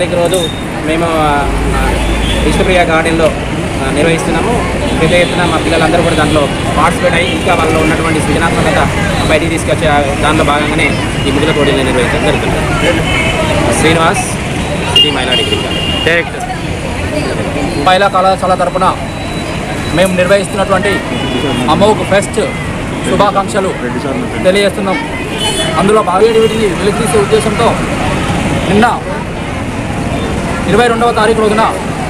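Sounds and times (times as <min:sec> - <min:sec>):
street traffic rumble: 0:00.0 - 0:32.0
man talking into microphones: 0:19.8 - 0:27.9.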